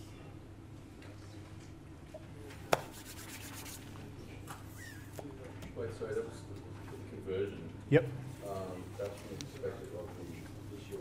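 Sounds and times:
low room hum: 0.0s - 11.0s
faint rubbing and scratching: 2.8s - 4.0s.

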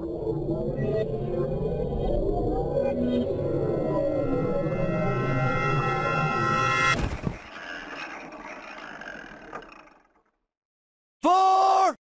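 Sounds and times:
music: 0.0s - 7.0s.

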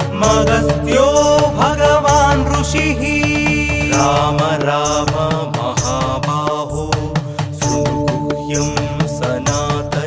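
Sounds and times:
steady percussion beat: 0.0s - 10.0s.

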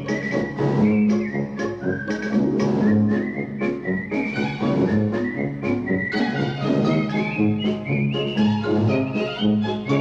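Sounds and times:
instrumental backing with beat: 0.0s - 10.0s
whistled melody: 0.0s - 10.0s.

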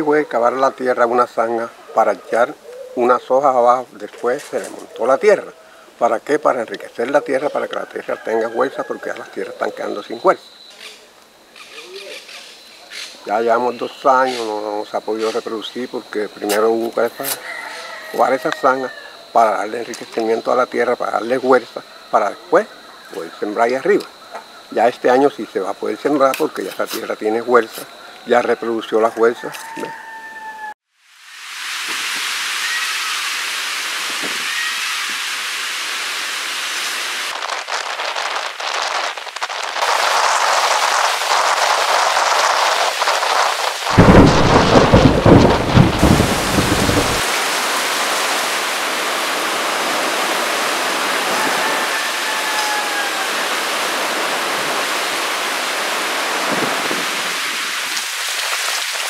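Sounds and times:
heavy rain: 31.0s - 59.0s
thunder rumble: 37.3s - 47.9s.

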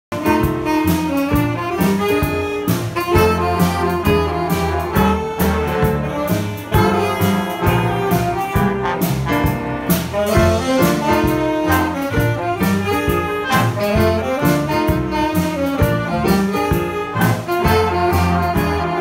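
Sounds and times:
jazz band horns: 0.1s - 19.0s
drum hits: 4.9s - 12.5s.

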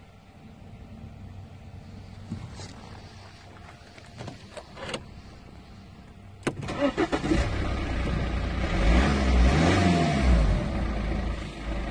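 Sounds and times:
car engine cranking and running: 0.0s - 11.9s.

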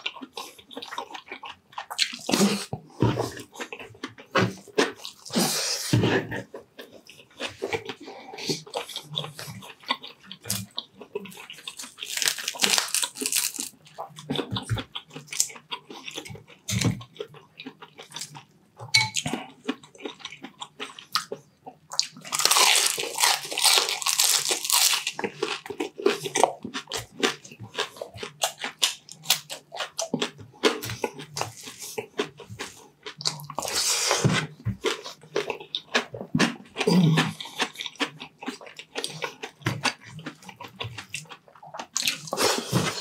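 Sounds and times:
chewing and crunching crispy food: 0.0s - 43.0s.

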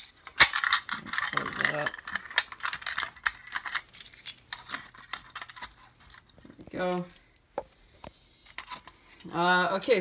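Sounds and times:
keys jangling: 0.4s - 6.3s.

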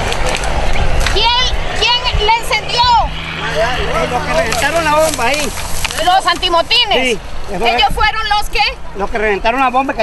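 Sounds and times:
low rumble: 0.0s - 7.6s
steady low hum: 0.0s - 7.6s
high-pitched voices talking: 1.0s - 7.1s.

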